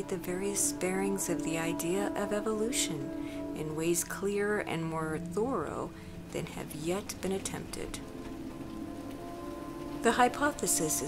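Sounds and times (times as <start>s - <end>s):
soft background music: 0.0s - 11.0s
steady rain: 0.0s - 11.0s.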